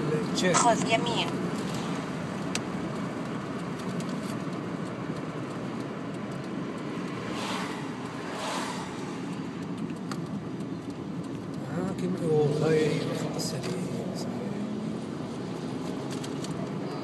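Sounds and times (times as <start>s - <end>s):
car road and engine noise: 0.0s - 17.0s.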